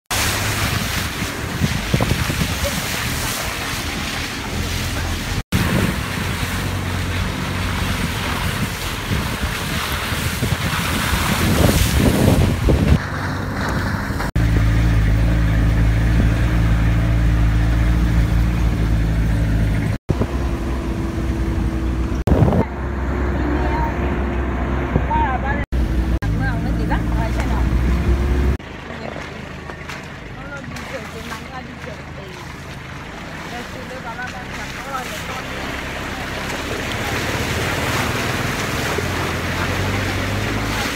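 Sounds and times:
low engine hum: 0.1 - 40.9
vehicle driving on dirt road: 0.1 - 40.9
wind on microphone: 0.6 - 3.2, 5.3 - 6.7, 7.7 - 14.6, 21.7 - 22.7.

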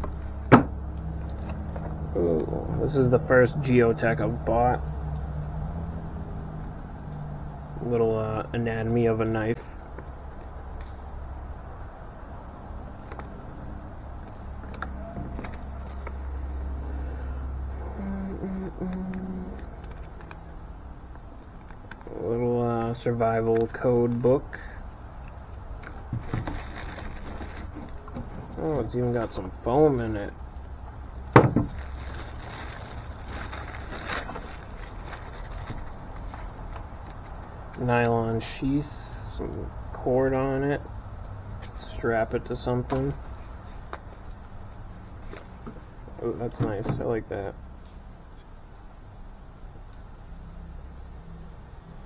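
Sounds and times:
paper cards and packaging rustling: 25.8 - 28.2, 31.6 - 37.8
plastic bag crinkling: 26.2 - 28.1, 31.6 - 36.9.

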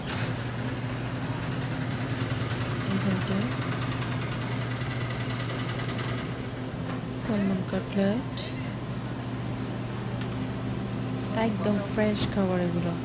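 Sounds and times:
low machine hum: 0.0 - 13.0
store background noise: 0.0 - 13.0.

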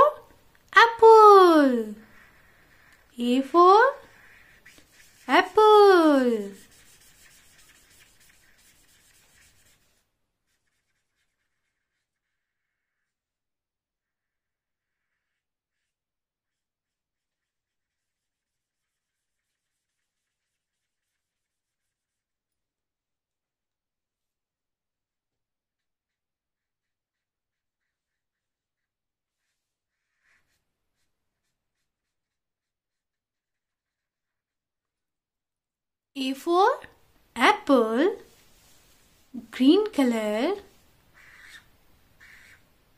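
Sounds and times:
person speaking: 0.0 - 2.2, 3.1 - 7.5, 36.2 - 38.4, 39.3 - 40.7
marker rubbing on paper: 0.8 - 13.3, 14.1 - 22.3, 25.8 - 34.6, 37.5 - 42.8.

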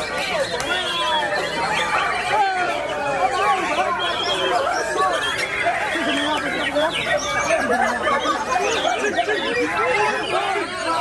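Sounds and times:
human voices: 0.0 - 11.0
many songbirds singing: 0.0 - 11.0.

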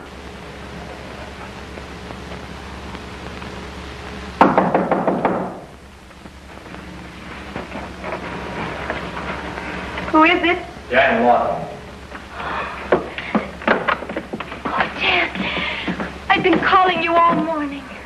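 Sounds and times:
film soundtrack hum and hiss: 0.0 - 18.0.

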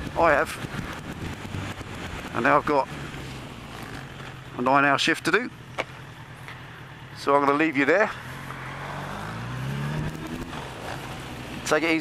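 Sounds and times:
motorcycle engine accelerating: 0.0 - 4.7, 5.5 - 12.0
wind and road noise: 0.0 - 12.0.

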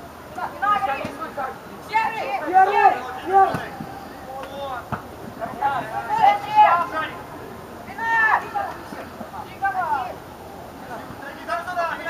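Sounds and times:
people shouting: 0.6 - 4.8, 5.4 - 7.3, 7.9 - 10.2.

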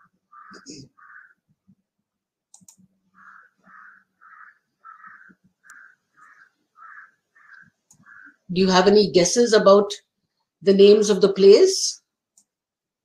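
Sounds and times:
animal calling: 0.0 - 1.4, 3.1 - 8.5
soft clicks: 2.5 - 2.9, 12.3 - 12.6.

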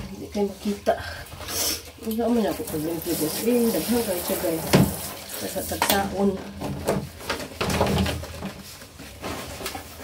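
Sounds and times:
scrubbing wet plastic: 0.0 - 10.0.

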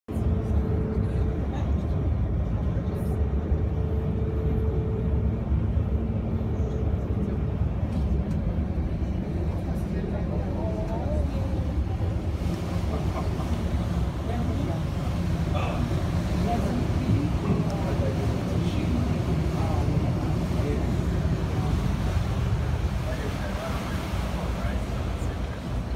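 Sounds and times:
boat engine low drone: 0.1 - 25.9
higher steady hum: 0.1 - 25.9
water rushing: 0.2 - 25.9.

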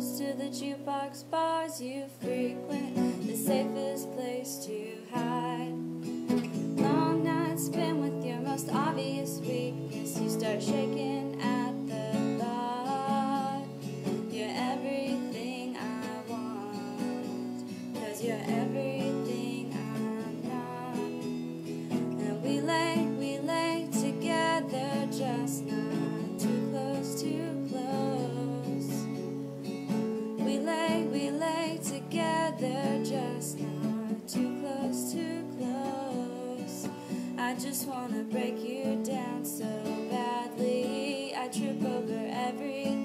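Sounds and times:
person singing: 0.0 - 29.4, 30.3 - 43.0
acoustic guitar strumming: 2.2 - 43.0.

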